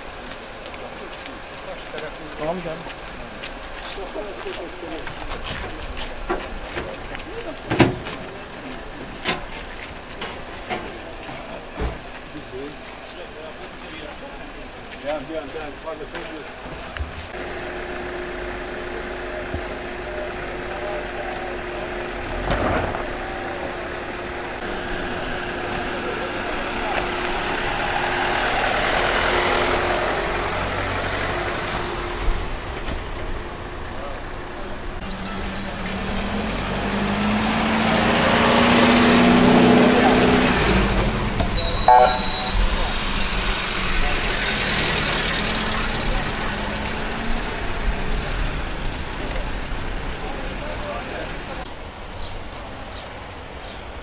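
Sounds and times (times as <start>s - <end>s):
crowd voices: 0.0s - 53.6s
vehicles driving past: 0.0s - 54.0s.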